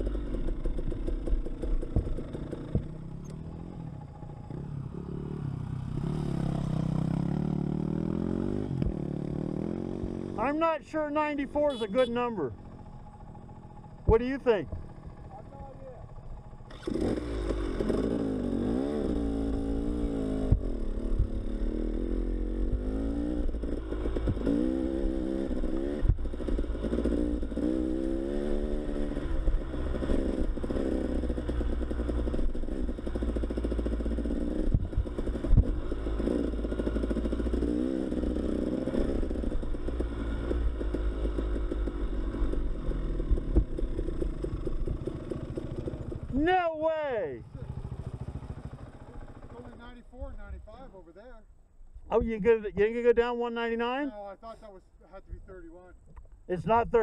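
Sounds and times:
bike clattering on rough track: 0:00.0 - 0:03.3
dirt bike engine revving: 0:00.0 - 0:51.0.

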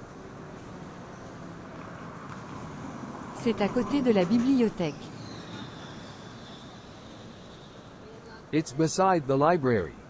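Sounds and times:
low traffic hum: 0:00.0 - 0:10.0.

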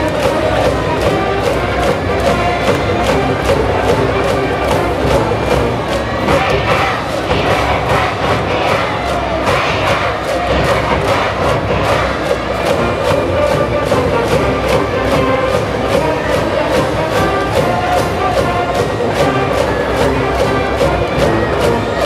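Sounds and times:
brass band playing cheer song: 0:00.0 - 0:22.0
crowd chanting and shouting: 0:00.0 - 0:22.0
steady drum beat: 0:00.0 - 0:22.0.

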